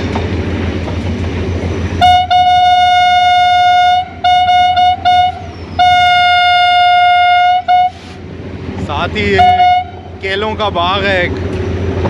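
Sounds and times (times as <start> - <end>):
locomotive horn blasts: 2.0 - 8.2, 9.2 - 10.1.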